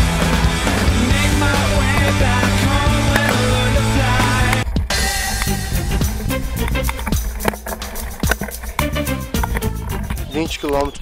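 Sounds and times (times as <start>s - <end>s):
rock music: 0.0s - 10.4s.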